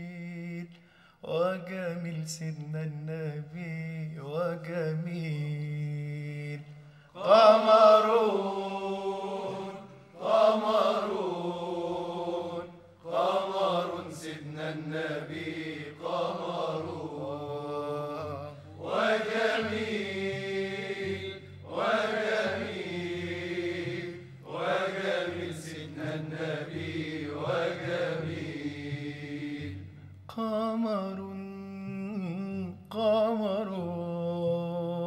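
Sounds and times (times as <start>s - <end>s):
man singing ornamented phrases: 0.0s - 9.0s, 12.5s - 21.8s, 30.3s - 35.0s
singer breathing: 0.8s - 1.2s, 6.7s - 7.2s.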